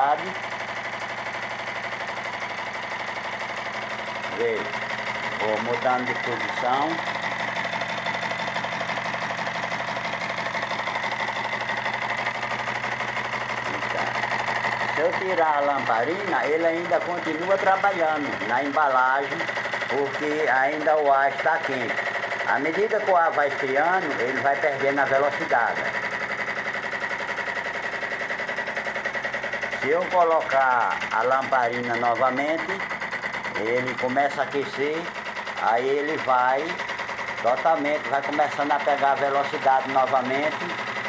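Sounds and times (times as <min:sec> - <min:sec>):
engine mechanical clatter: 0:00.3 - 0:41.0.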